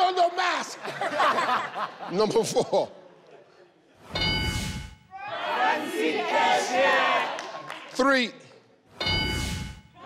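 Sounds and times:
ringing reveal chime: 4.0 - 5.1, 9.0 - 10.0
crowd cheering and shouting: 5.1 - 7.7.

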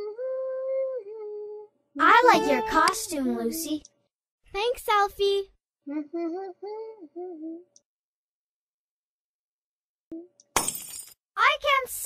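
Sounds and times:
short tone: 2.2 - 2.9
glass shattering crash: 10.6 - 11.2.

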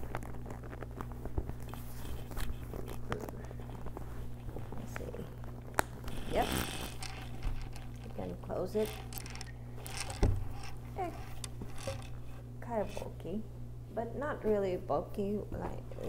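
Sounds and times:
leather bag rustling: 0.0 - 12.3
steady low hum: 0.0 - 16.0.

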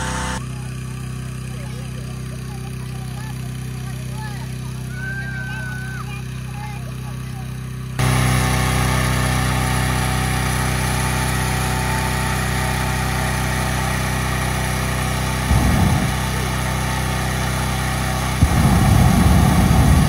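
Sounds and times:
inflator fan engine running: 0.0 - 20.0
low rumble: 15.5 - 16.2, 18.4 - 20.0.

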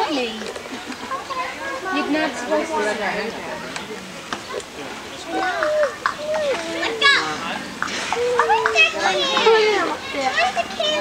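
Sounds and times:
young children chattering: 0.0 - 11.0
child's high-pitched cry: 5.3 - 7.2, 8.2 - 11.0.

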